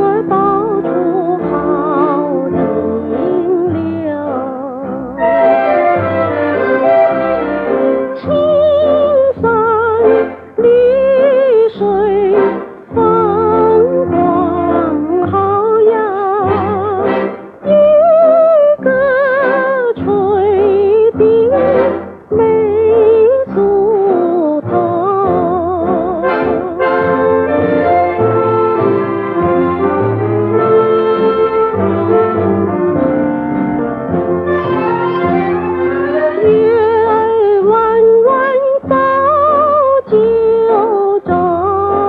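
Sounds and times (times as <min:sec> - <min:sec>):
woman singing with vibrato: 0:00.0 - 0:05.8, 0:08.1 - 0:28.0, 0:34.8 - 0:42.0
instrumental accompaniment: 0:00.0 - 0:42.0.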